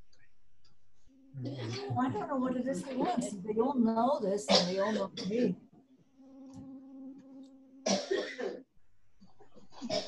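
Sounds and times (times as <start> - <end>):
low buzzing hum: 0.0 - 4.6, 6.0 - 9.9
person coughing: 1.4 - 2.1, 4.5 - 5.5, 7.9 - 8.6, 9.6 - 10.0.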